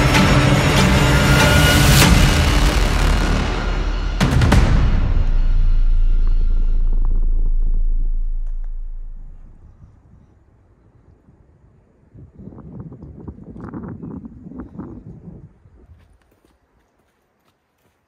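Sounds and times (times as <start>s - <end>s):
deep booming music rumble: 0.0s - 10.3s
footsteps on bare rock: 15.8s - 18.0s.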